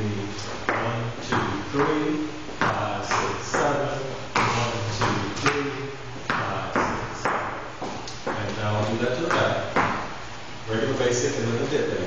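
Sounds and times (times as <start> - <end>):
man speaking: 0.0 - 7.4, 8.2 - 9.8, 10.7 - 12.0.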